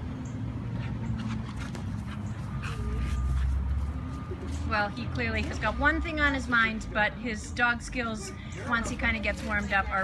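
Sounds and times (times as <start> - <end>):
dog panting: 0.7 - 3.9.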